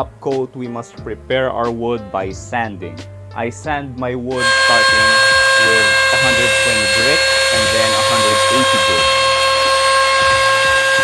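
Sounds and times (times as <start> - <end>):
electric router motor whine: 4.4 - 11.0.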